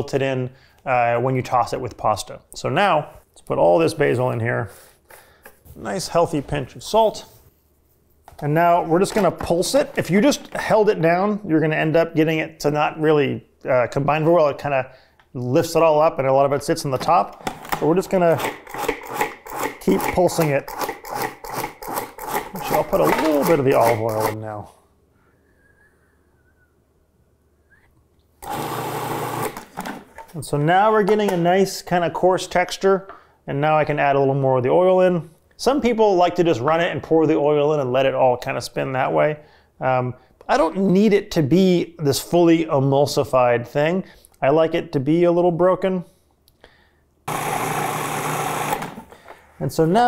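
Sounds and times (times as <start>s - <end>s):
food processor motor running: 18.4s - 20.1s, 20.7s - 24.3s, 28.4s - 29.6s, 47.3s - 49.1s.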